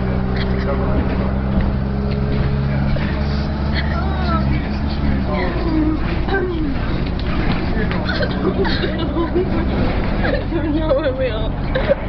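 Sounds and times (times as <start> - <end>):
bus engine droning: 0.0 - 12.0.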